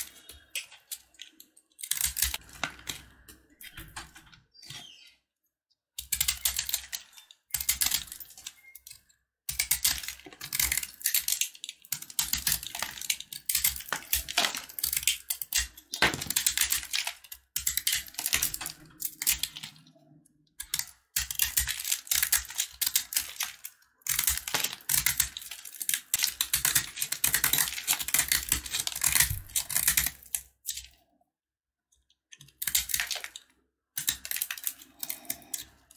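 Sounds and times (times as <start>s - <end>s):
soap crackling as it is cut: 0.0s - 3.3s, 6.0s - 19.9s, 20.6s - 31.0s, 32.3s - 35.9s.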